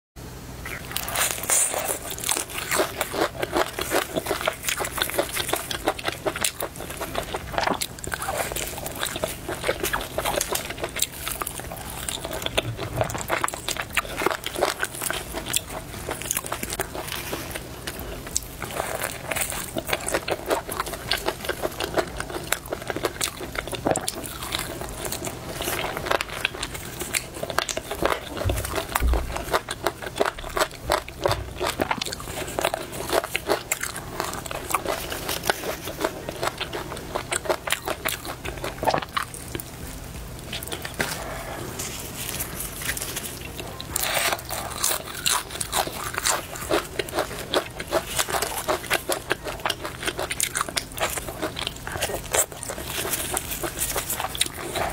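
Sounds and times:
crunching fried chicken: 0.5 - 54.9
low thumps: 28.3 - 32.2.

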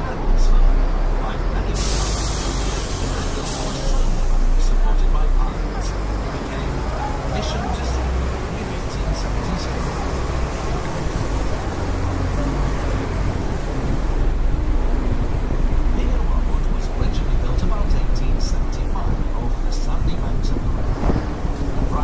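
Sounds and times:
bus engine and road noise rumble: 0.0 - 22.0.

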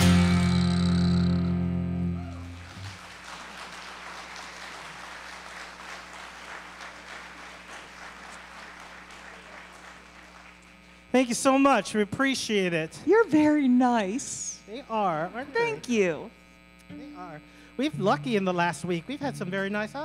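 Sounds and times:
acoustic guitar and cello chord: 0.0 - 2.6, 16.8 - 20.0
audience applauding: 2.1 - 11.0.

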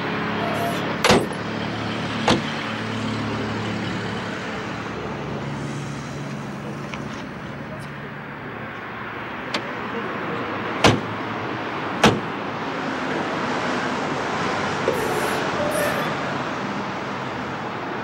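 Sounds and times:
car hood thumping shut: 12.0 - 12.3.

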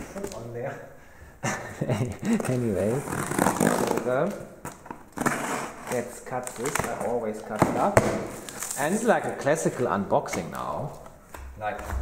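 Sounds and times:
man laughing: 1.4 - 3.0
knife slitting packing tape: 5.1 - 7.2.

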